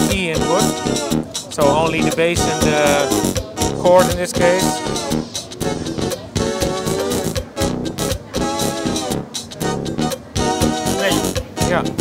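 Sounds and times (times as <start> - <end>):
synthesizer music: 0.0 - 12.0.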